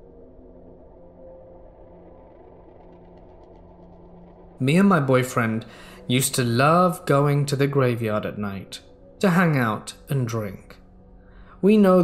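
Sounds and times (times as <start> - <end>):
faint low drone: 0.0 - 12.0.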